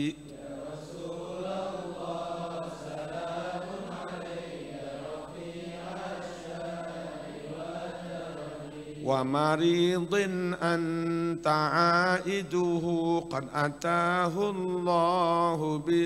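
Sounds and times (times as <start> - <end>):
men chanting together: 0.0 - 16.0
solo voice singing verses: 9.0 - 16.0.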